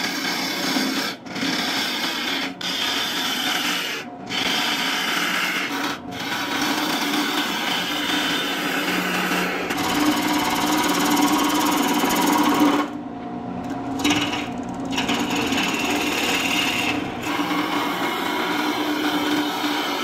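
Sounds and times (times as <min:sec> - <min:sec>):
gouge cutting wood: 0:00.0 - 0:12.9, 0:14.0 - 0:20.0
lathe humming: 0:01.4 - 0:13.0, 0:13.7 - 0:20.0.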